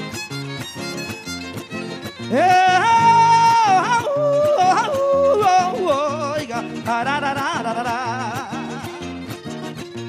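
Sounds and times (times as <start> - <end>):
fiddle: 0.0 - 6.9, 7.7 - 10.0
strummed guitar: 0.0 - 10.0
person singing yodel-like call: 2.4 - 6.1.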